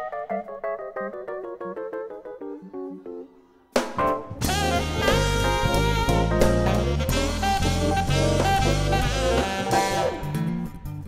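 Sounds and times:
electric piano chords: 0.0 - 10.8.

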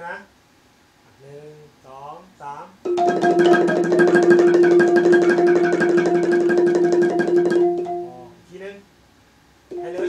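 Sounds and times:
wooden xylophone fast roll: 2.9 - 8.3, 9.7 - 10.0.

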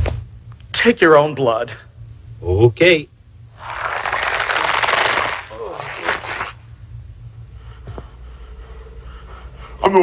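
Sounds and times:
loud crackling hiss: 3.6 - 6.6.

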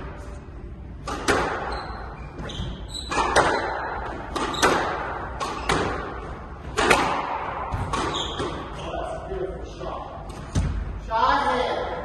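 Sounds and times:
ball hitting court walls: 1.0 - 1.8, 2.4 - 8.7
racket hitting squash ball: 1.0 - 8.9.

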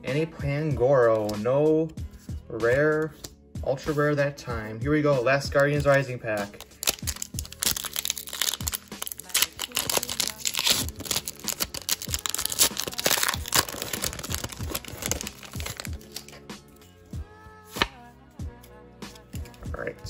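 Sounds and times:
background music: 0.0 - 20.0
foil wrapper crinkling: 6.6 - 16.4.

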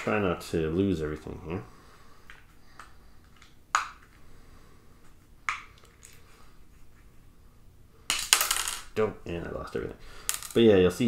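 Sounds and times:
plastic parts clattering on table: 10.2 - 10.6.

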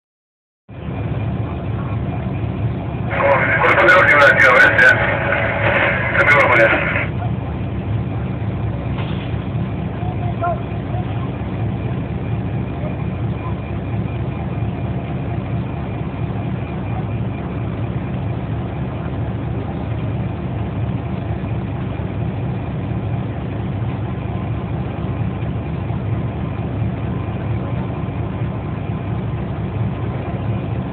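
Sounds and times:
low mechanical rumble: 0.7 - 30.9.

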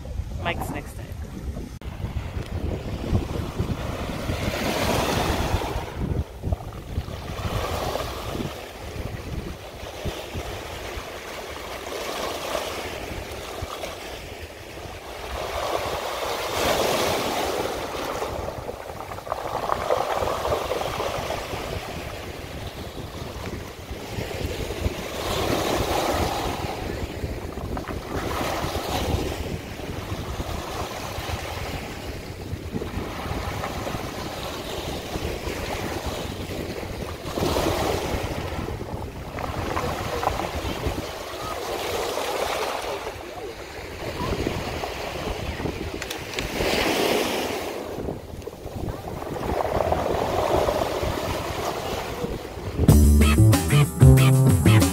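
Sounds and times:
small waves washing on beach: 0.0 - 52.9.

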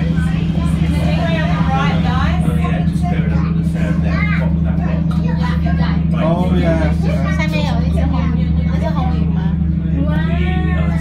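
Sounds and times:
boat engine drone: 0.0 - 11.0
people talking: 0.0 - 11.0.

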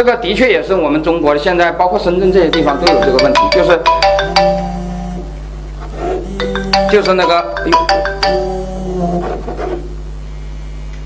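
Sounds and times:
low electrical hum: 0.0 - 11.0
marimba ringtone melody: 2.4 - 5.4, 6.3 - 9.2.

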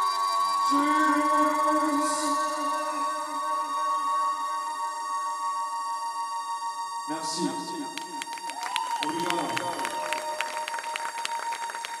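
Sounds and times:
steady electronic drone: 0.0 - 12.0
audience hand claps: 7.8 - 12.0.

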